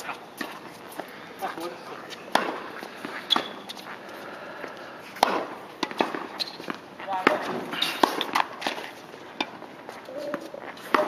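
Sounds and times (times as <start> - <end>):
tennis racket hitting ball: 2.3 - 3.8, 5.2 - 8.8, 10.3 - 11.0.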